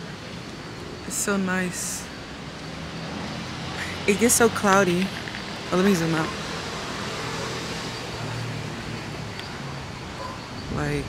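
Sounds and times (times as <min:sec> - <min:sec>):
distant city traffic hum: 0:00.0 - 0:11.0.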